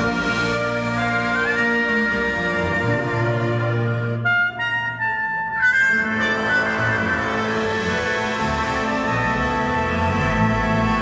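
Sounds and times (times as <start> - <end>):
accordion: 0.0 - 11.0
brass: 0.0 - 11.0
clarinet: 0.0 - 11.0
double bass: 0.0 - 11.0.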